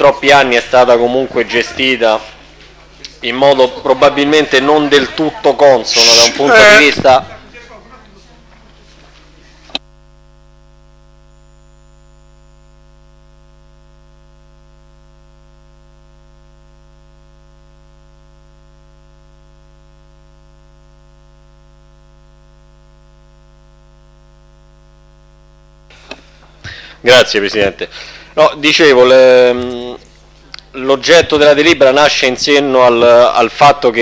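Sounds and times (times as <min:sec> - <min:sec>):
electrical mains hum: 0:00.0 - 0:34.0.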